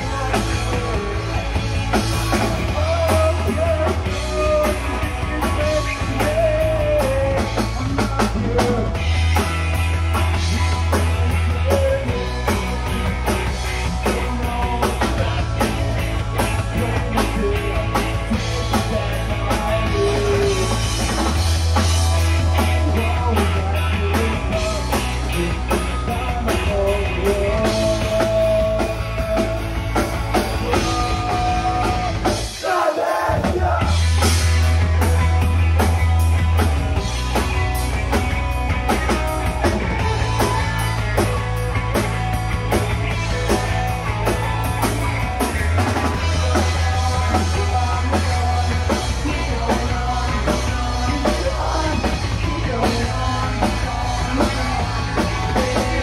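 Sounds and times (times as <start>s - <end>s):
bass guitar: 0.0s - 56.0s
drum kit: 0.0s - 56.0s
electric guitar: 0.0s - 56.0s
person singing: 2.3s - 9.1s, 16.6s - 21.1s, 22.6s - 29.8s, 30.4s - 34.0s, 46.0s - 56.0s.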